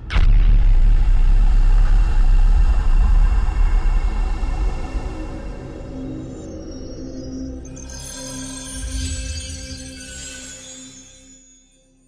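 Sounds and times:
deep steady rumble: 0.0s - 6.2s.

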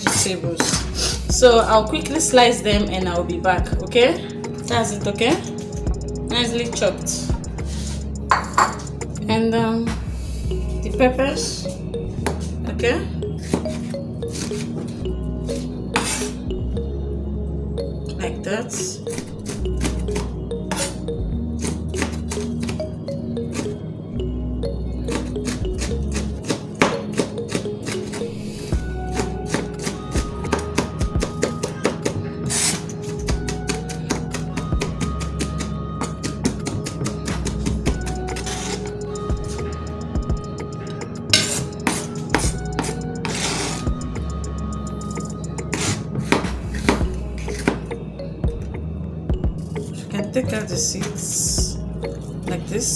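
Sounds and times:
background music: 0.0s - 52.9s
knife chopping on cutting board: 29.1s - 32.7s.

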